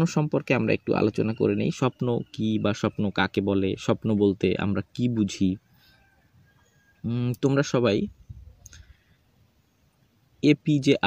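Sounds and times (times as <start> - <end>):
man speaking: 0.0 - 5.6, 7.0 - 8.2, 10.4 - 11.0.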